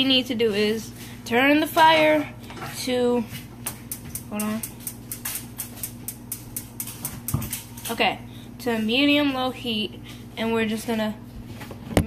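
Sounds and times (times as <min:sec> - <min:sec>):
steady low hum: 0:00.0 - 0:12.0
gas burner igniter clicking: 0:03.9 - 0:07.9.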